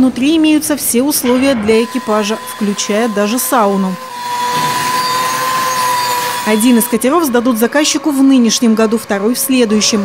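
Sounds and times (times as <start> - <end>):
power tool grinding steel: 1.0 - 10.0.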